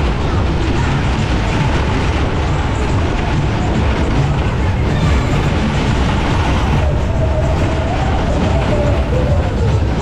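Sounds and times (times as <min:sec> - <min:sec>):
fairground ride rumbling and rattling: 0:00.0 - 0:10.0.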